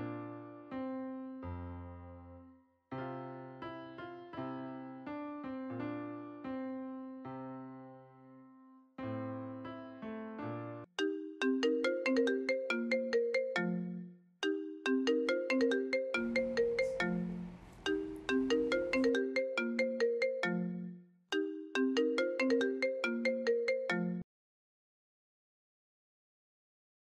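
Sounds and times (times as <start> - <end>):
mobile phone ringtone: 11.0 - 24.2.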